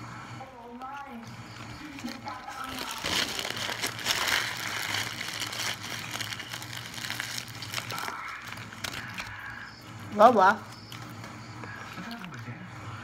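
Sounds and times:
fries rummaged in plastic tub: 1.8 - 9.2
paper wrapper crinkling: 1.8 - 9.6.

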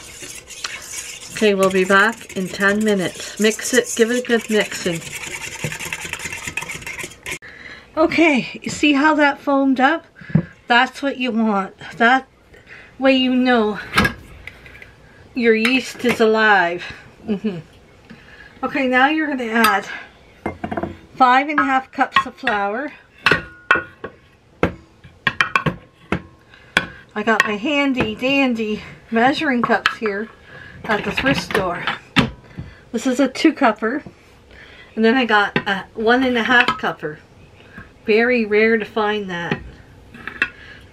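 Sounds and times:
utensil scraping metal bowl: 0.0 - 7.4.

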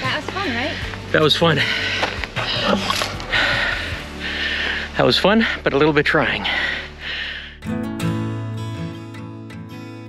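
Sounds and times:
background music: 0.0 - 10.0
man breathing hard: 1.6 - 5.7, 6.3 - 7.7.

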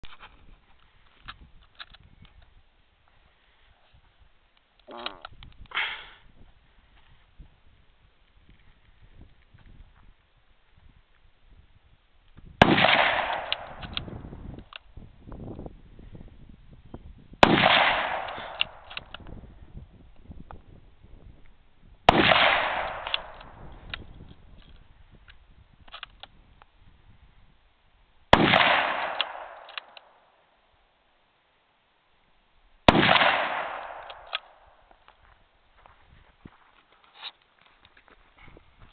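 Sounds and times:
rifle shots: 12.6 - 14.0, 17.4 - 19.1, 22.1 - 23.6, 28.3 - 30.2, 32.9 - 34.8
rifle bolt clicks: 12.8 - 14.9, 18.1 - 19.3, 22.4 - 24.8, 28.6 - 30.1, 33.1 - 34.6.

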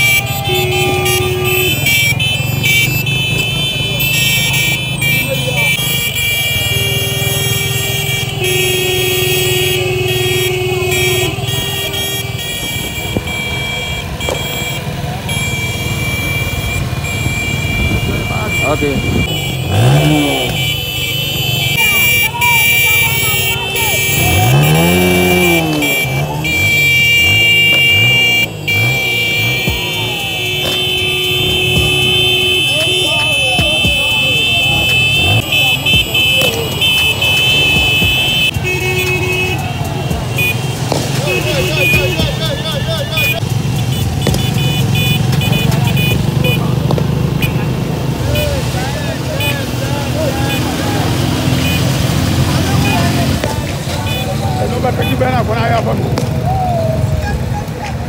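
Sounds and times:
horn blasts: 0.0 - 56.2
crowd voices: 0.0 - 58.0
motorcycle engines revving: 0.0 - 58.0.

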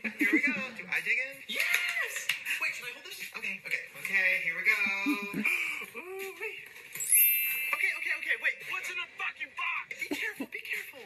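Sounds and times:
bright rising chime: 7.0 - 8.1.

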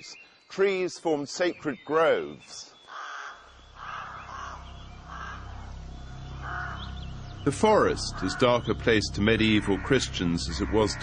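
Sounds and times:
crows cawing: 2.8 - 11.0
low steady rumble: 3.5 - 11.0.

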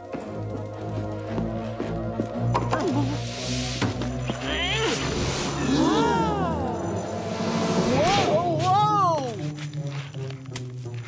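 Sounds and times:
cartoon zooming glide: 4.9 - 8.6.

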